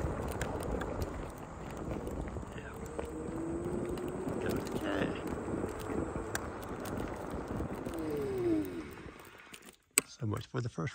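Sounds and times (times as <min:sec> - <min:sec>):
electric motor whine: 0:00.0 - 0:09.6
wheels rumbling on rough asphalt: 0:00.0 - 0:09.9.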